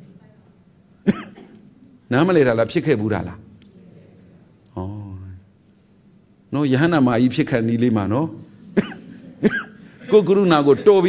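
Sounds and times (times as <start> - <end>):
person coughing: 1.0 - 1.6, 8.8 - 9.9.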